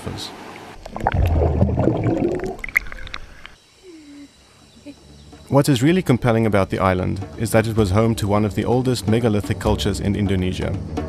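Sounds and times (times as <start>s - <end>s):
water splashes and droplets: 0.4s - 3.6s
seawater churning and gurgling: 0.6s - 3.6s.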